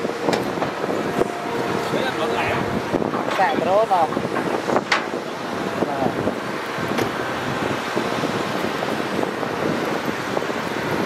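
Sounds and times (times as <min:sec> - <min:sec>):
excavator diesel engines running: 0:00.0 - 0:11.0
wind buffeting microphone: 0:00.0 - 0:11.0.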